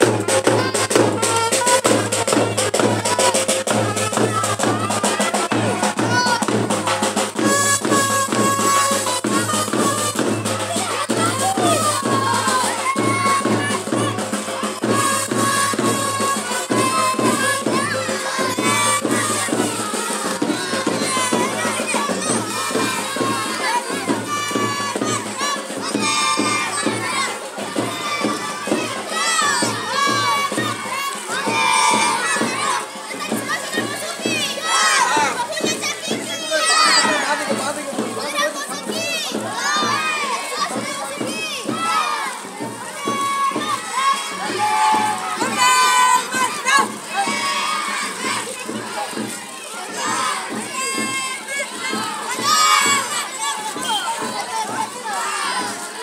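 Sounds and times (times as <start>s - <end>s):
children shouting: 0.0s - 56.0s.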